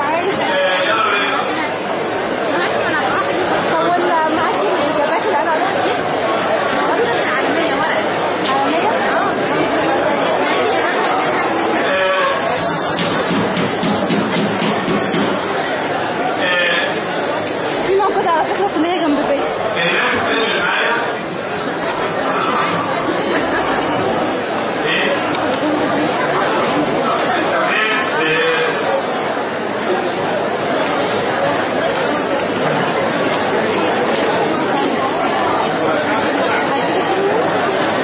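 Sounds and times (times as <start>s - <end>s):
overlapping chatter of voices: 0.0s - 38.0s.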